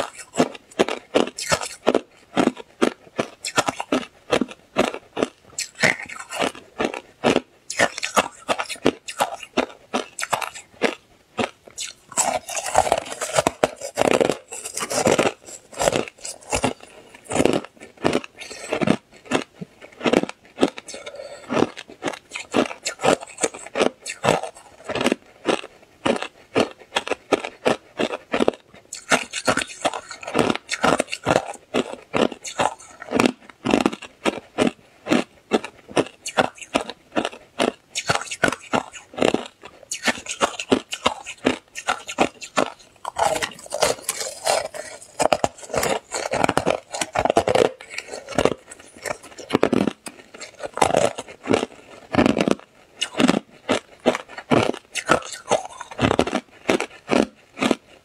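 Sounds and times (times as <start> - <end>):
ice crunching between teeth: 0.0 - 58.0.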